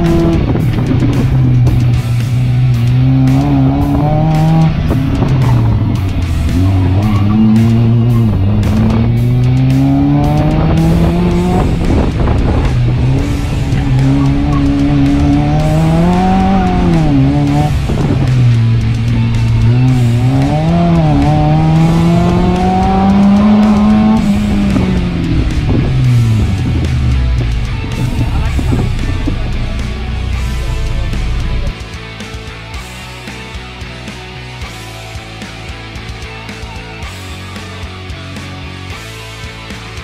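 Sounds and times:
car engine revving hard: 0:00.0 - 0:31.7.

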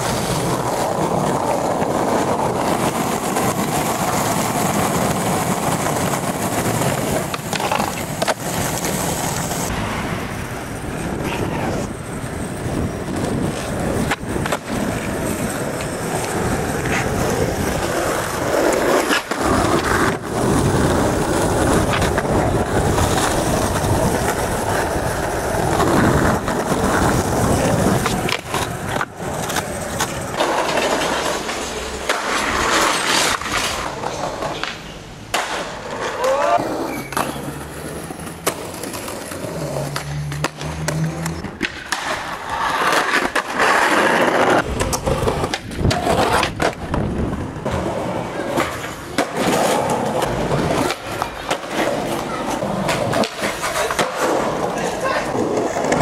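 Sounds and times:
skateboard clacks: 0:00.0 - 0:56.0
skateboard wheels rolling: 0:00.0 - 0:56.0.

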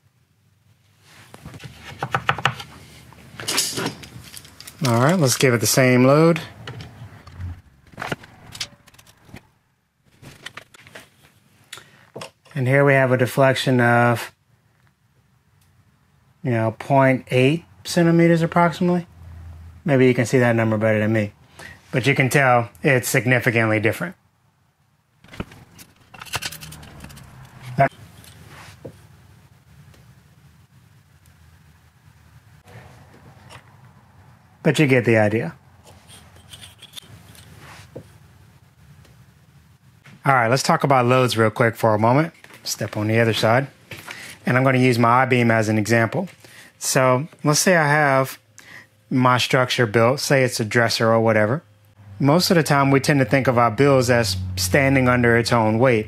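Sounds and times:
metal tools clattering on wood: 0:03.4 - 0:05.2, 0:25.3 - 0:28.4, 0:35.9 - 0:37.5
metallic clinks and rattles: 0:03.4 - 0:05.5, 0:25.7 - 0:28.4, 0:35.9 - 0:37.5.

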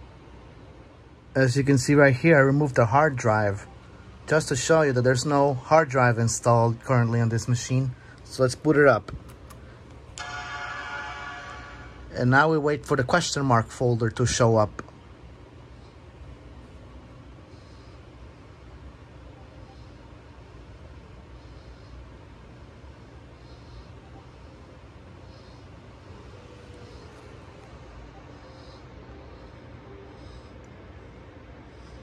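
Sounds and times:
background hum and hiss: 0:00.0 - 0:32.0.

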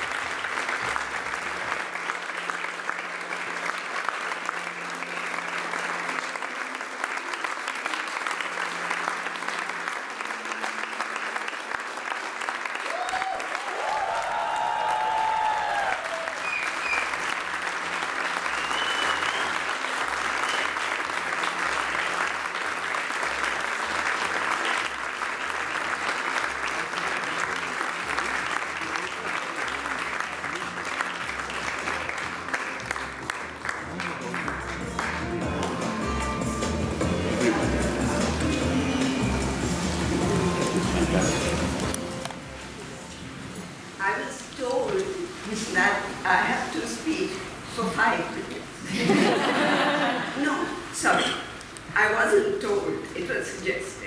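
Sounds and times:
audience applauding: 0:00.0 - 0:42.4, 0:48.9 - 0:50.9.

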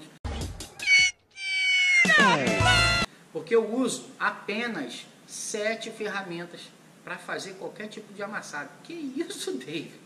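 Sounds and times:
cat-like wail sound effect: 0:00.8 - 0:03.1.

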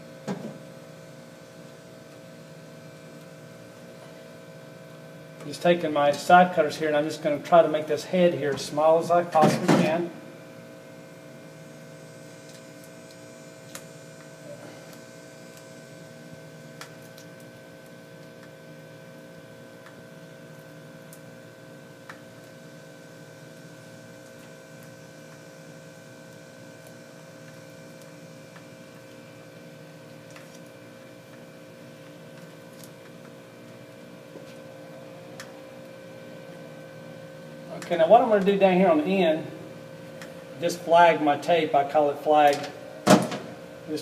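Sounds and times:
steady hum of held tones: 0:00.0 - 0:44.0.

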